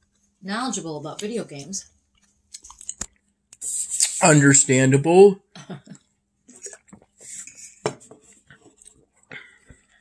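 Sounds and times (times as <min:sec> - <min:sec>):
person chewing food: 0:02.0 - 0:03.6, 0:06.4 - 0:10.0.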